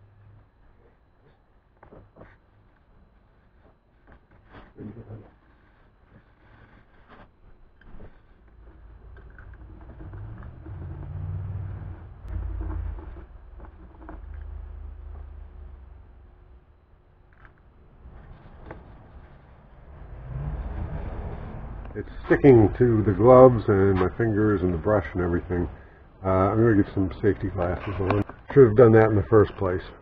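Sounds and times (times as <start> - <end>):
low rumble of passing vehicle: 8.0 - 28.2.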